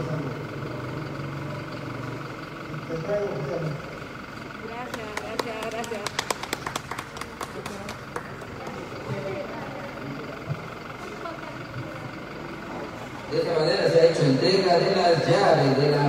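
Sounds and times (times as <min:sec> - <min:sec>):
murmur of voices: 0:00.0 - 0:16.0
people clapping: 0:04.8 - 0:09.2.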